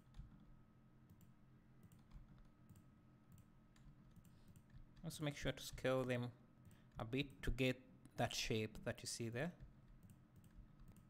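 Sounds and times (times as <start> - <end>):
faint steady hum: 0.0 - 11.0
computer mouse and keyboard clicks: 1.1 - 7.3, 9.6 - 11.0.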